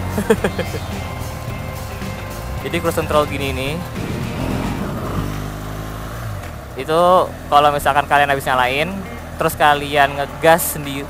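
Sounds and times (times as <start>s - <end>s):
motorcycle engine running steadily: 0.0s - 11.0s.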